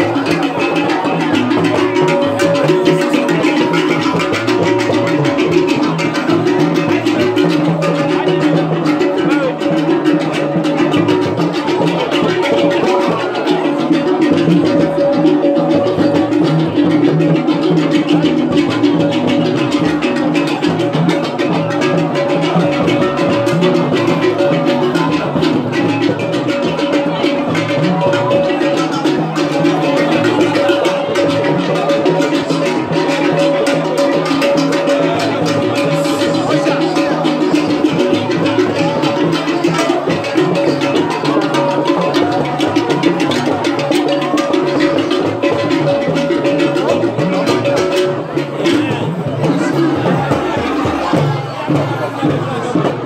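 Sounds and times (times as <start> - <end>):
percussion music with drums and rattles: 0.0 - 53.0.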